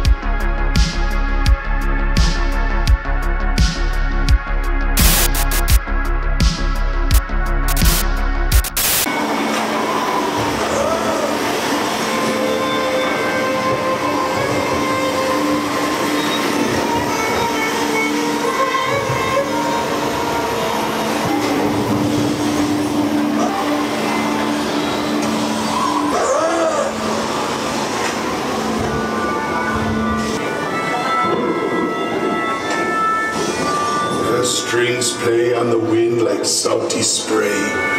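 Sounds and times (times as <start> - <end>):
rising and falling tones: 5.0 - 5.8
low drone tones: 5.0 - 34.4.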